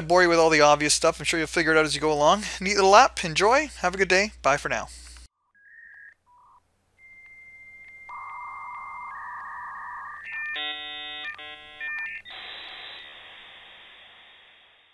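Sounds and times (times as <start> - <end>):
dial-up modem handshake: 6.3 - 13.1.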